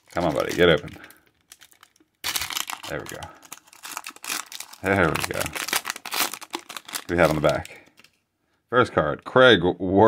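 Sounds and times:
foil wrapper tearing open: 0.0s - 8.1s
foil wrapper crinkling: 0.0s - 8.2s.

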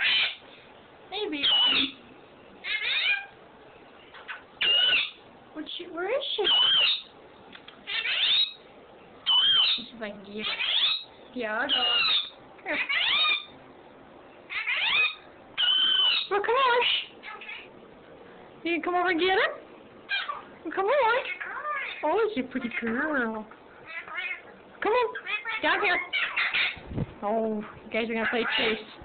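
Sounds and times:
parrot calling: 0.0s - 0.5s, 1.2s - 3.4s, 4.0s - 5.3s, 6.2s - 7.2s, 7.8s - 13.6s, 14.4s - 17.8s, 20.0s - 22.8s, 23.8s - 26.9s, 28.1s - 29.0s
parrot high whistle: 1.4s - 2.0s, 4.6s - 5.2s, 6.4s - 7.1s, 9.2s - 9.8s, 11.7s - 12.3s, 14.5s - 16.3s.

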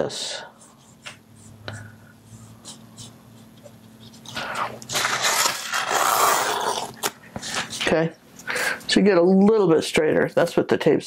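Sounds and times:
tape peeling off paper: 4.8s - 7.2s.

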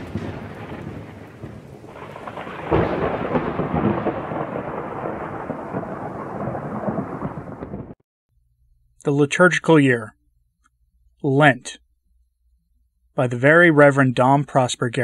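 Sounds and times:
loud thunderclap: 0.0s - 8.0s
rain: 0.0s - 8.0s
rolling thunder: 0.0s - 8.0s.

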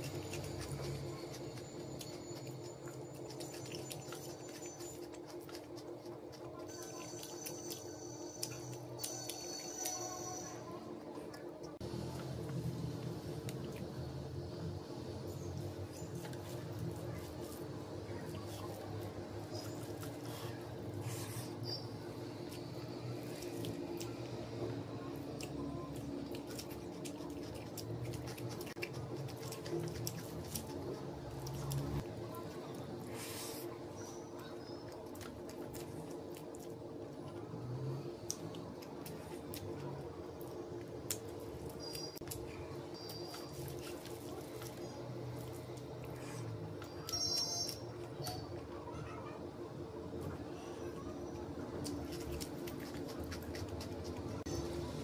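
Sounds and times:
wet squishing of food: 0.0s - 55.0s.

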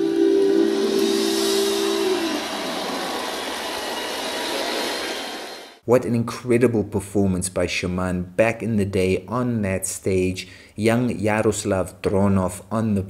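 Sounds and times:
hiss-like wash of noise: 0.0s - 5.8s.

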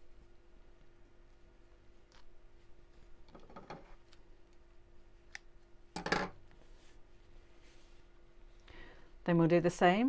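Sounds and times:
scissors clattering on wooden table: 6.0s - 6.4s.

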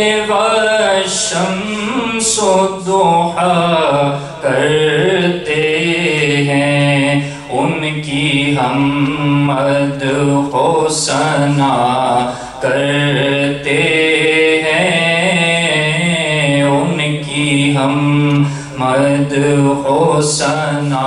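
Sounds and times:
man chanting into microphone: 0.0s - 21.0s.

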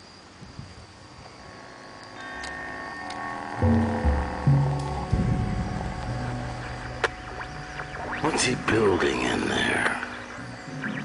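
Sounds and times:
steady hiss: 0.0s - 11.0s
thin high whine: 0.0s - 11.0s
sustained drone tones: 1.1s - 11.0s.

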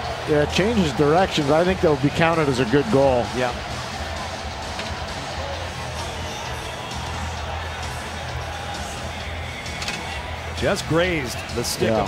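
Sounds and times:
crowd noise: 0.0s - 12.0s
music playing: 0.0s - 12.0s.

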